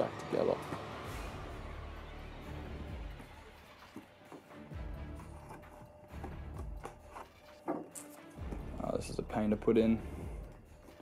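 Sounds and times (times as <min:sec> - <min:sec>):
slow background music: 0:00.0 - 0:11.0.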